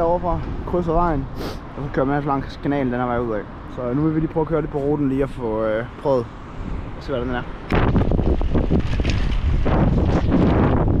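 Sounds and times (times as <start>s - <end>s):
wind buffeting microphone: 6.6s - 11.0s
bike tyres rumbling on grass: 7.8s - 11.0s.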